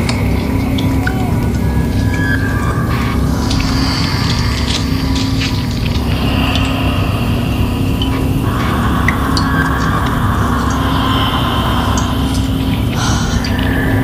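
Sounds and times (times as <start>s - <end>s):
held hum tone: 0.0s - 14.0s
low amplifier drone: 0.0s - 14.0s.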